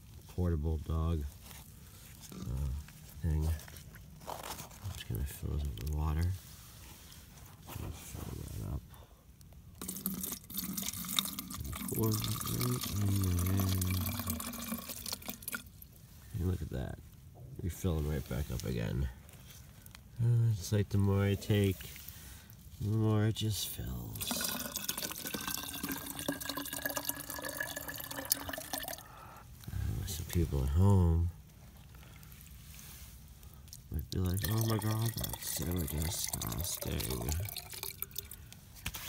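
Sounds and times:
water pouring into plastic bottle: 9.8 - 15.9, 24.0 - 29.1, 33.7 - 39.0.

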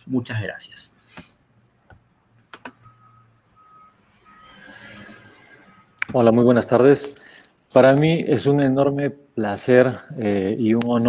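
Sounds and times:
high electronic beeps: 2.8 - 8.3.

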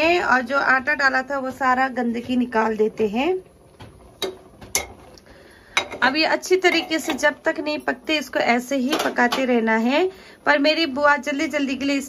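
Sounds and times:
metal ladle clinking on pot: 4.2 - 5.0.

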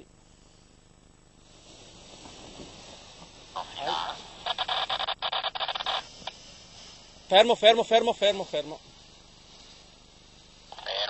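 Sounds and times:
paraglider fabric rustling: 1.4 - 11.0.

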